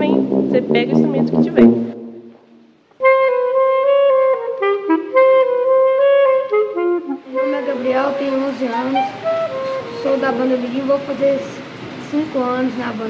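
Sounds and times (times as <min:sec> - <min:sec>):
wind instrument melody: 0:00.0 - 0:11.9.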